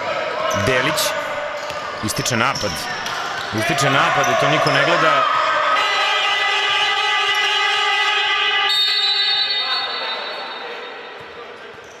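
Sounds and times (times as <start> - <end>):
basketball buzzer tone: 5.8 - 10.3.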